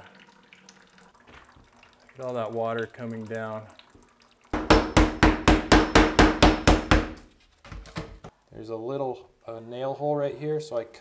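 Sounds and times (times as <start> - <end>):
water trickling into plastic bucket: 0.0 - 4.6.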